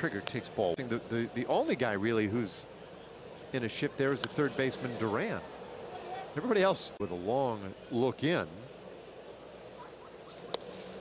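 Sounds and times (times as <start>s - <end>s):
crowd murmur: 0.0s - 11.0s.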